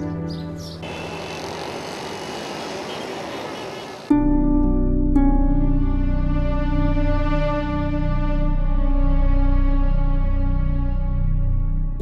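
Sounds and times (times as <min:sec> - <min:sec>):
soft background music: 0:00.0 - 0:00.9, 0:04.1 - 0:12.0
passing motorcycles and rickshaws: 0:00.0 - 0:04.1.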